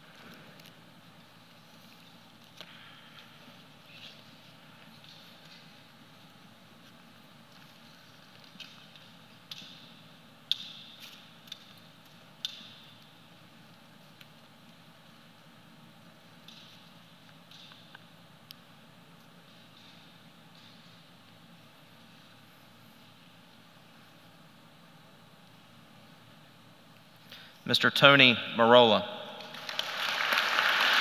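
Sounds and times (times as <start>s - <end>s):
low steady hum: 0.0s - 31.0s.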